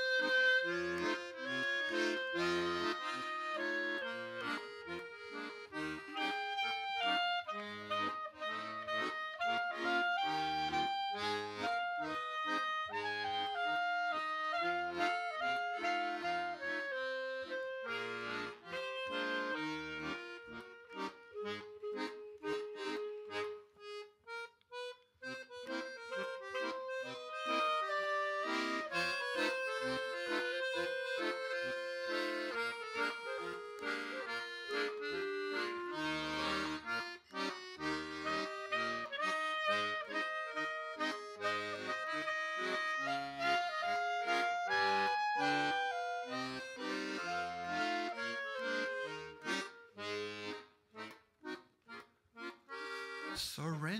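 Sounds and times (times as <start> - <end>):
accordion chords and bass notes: 0.0 - 53.9
clarinet melody: 0.0 - 53.9.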